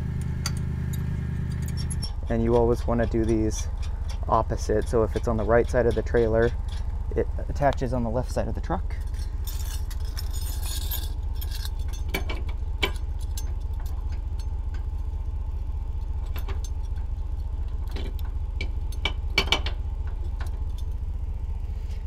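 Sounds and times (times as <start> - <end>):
steady low rumble: 0.0 - 22.0
metal chains clinking: 0.9 - 7.2, 8.9 - 15.1, 15.8 - 21.1.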